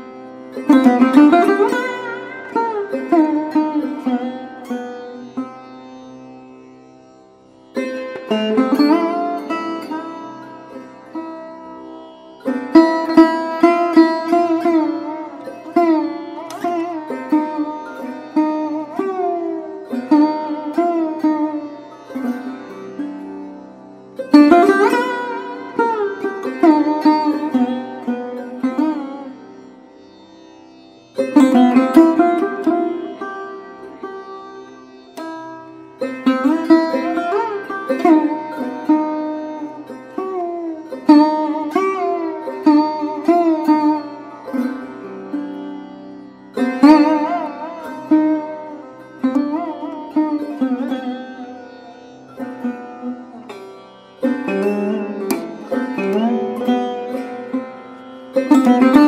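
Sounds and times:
sarod plucked melody: 0.0 - 59.0.

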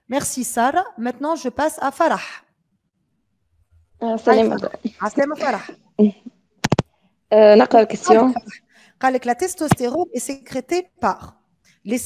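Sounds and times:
woman saying a name: 4.0 - 5.7, 7.4 - 8.6.

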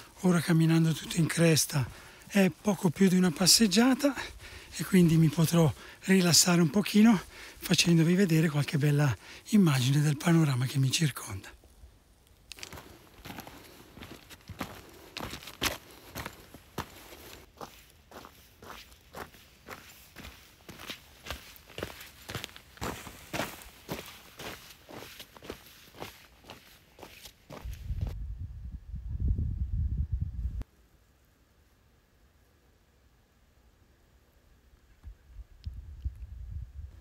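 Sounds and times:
boots crunching on gravel: 12.4 - 28.2.

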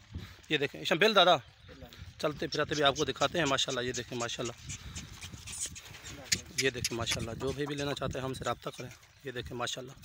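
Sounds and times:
goats moving about: 0.0 - 10.0
man's voice: 6.2 - 10.0.

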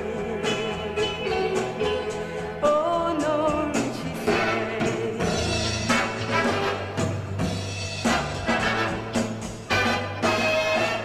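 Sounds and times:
woman singing pop ballad: 0.0 - 5.6
instrumental accompaniment: 0.0 - 11.0.

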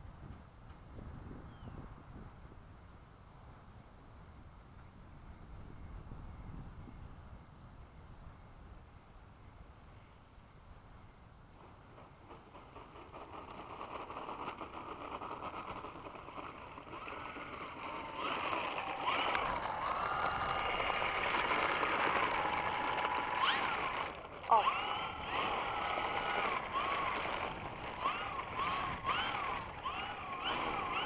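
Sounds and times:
model plane electric motor whining: 13.0 - 31.0.

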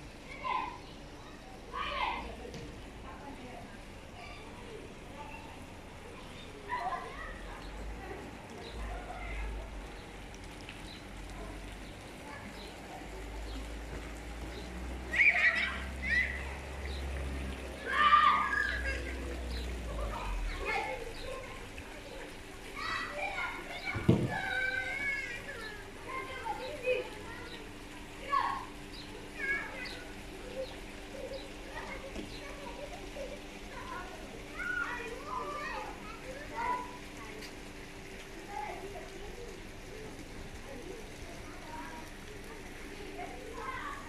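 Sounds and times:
children shrieking at play: 0.3 - 2.4, 6.2 - 7.6, 15.0 - 17.0, 17.8 - 37.1.

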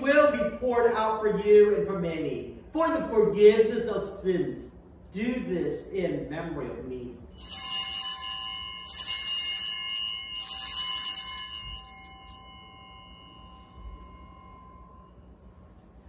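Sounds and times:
altar bells jangling: 7.4 - 15.3.

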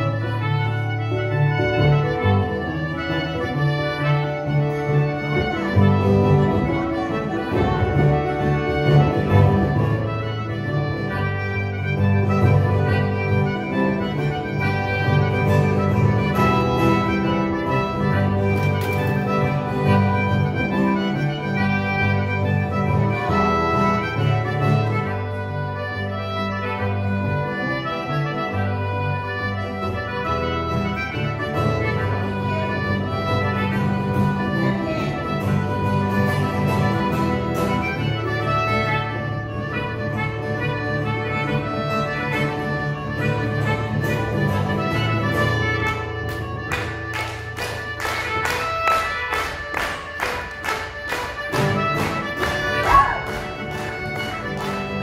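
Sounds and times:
button accordion tune: 0.0 - 55.0
plucked string instruments: 0.0 - 55.0.

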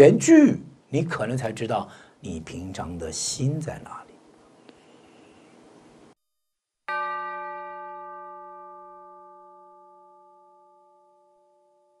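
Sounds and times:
bell ringing: 6.9 - 12.0.

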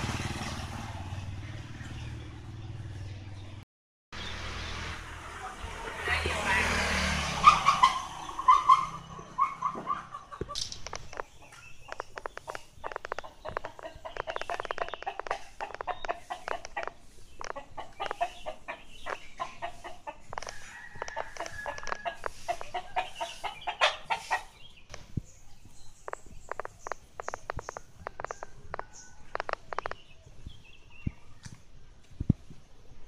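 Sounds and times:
chickens clucking: 7.4 - 24.8, 25.6 - 30.2.

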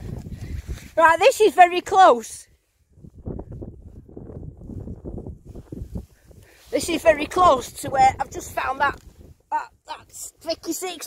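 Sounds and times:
wind buffeting microphone: 0.0 - 10.9.

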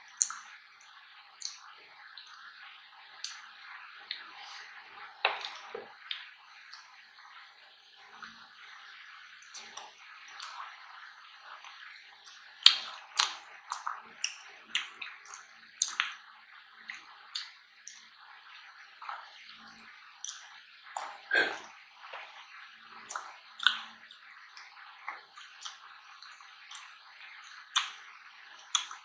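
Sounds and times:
soft wet chewing: 0.1 - 29.0
mouth clicks and smacks: 1.4 - 2.4, 12.2 - 16.2, 16.9 - 18.1, 19.0 - 22.4, 23.1 - 28.0, 28.6 - 29.0.

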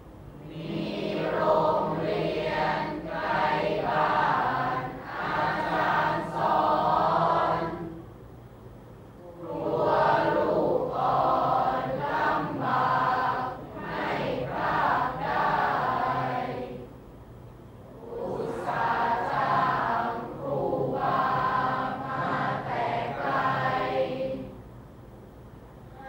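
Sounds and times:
group chanting verse: 0.3 - 8.1, 9.2 - 17.0, 17.8 - 24.6.

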